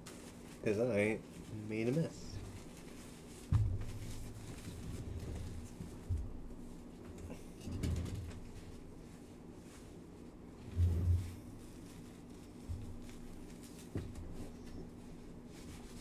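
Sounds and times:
hands wiped with napkins: 0.0 - 7.6, 8.4 - 16.0
dull thumps: 3.4 - 6.7.

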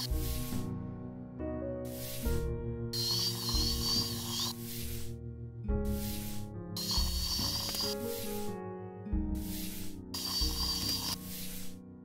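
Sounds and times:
dental spray hissing: 0.0 - 0.6, 1.9 - 2.4, 3.0 - 5.2, 5.9 - 8.5, 9.4 - 11.8
soft background music: 0.0 - 12.0
thin high whistle: 3.0 - 4.7, 6.8 - 8.0.

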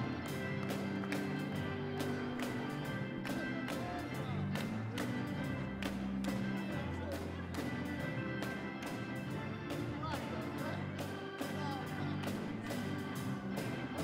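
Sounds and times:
electric organ chords: 0.0 - 14.0
guitar: 0.0 - 14.0
keyboard: 0.0 - 14.0.

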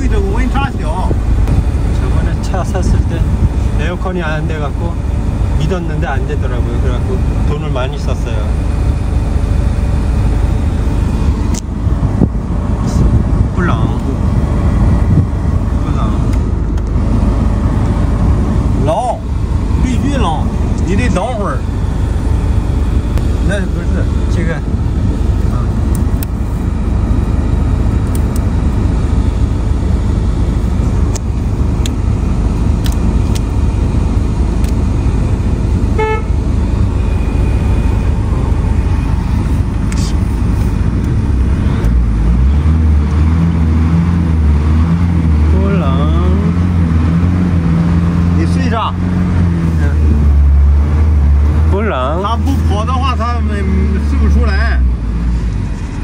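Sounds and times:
steady low hum: 0.0 - 56.0
van engine idling: 0.0 - 56.0.

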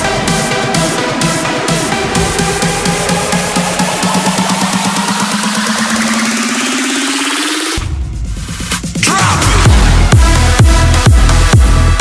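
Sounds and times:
rising synth note: 1.1 - 7.8.

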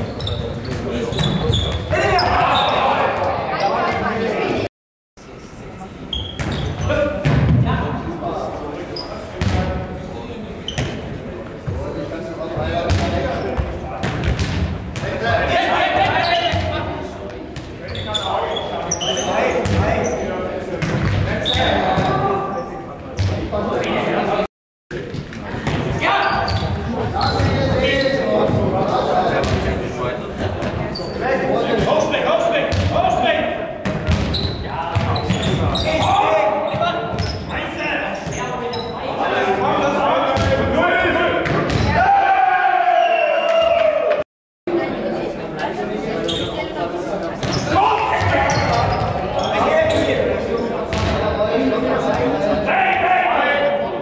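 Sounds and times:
ball thuds echoing in hall: 6.4 - 8.0, 9.3 - 10.0, 12.5 - 17.8, 19.6 - 20.0, 20.6 - 22.4, 24.9 - 30.9, 32.6 - 33.2, 33.8 - 37.3, 40.3 - 42.1, 50.9 - 51.4
ball bouncing on hall floor: 12.9 - 15.2, 33.8 - 35.8, 41.4 - 42.0, 50.9 - 51.2.

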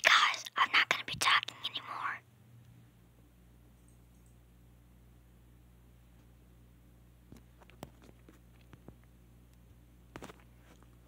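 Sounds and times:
person whispering: 0.0 - 2.2.

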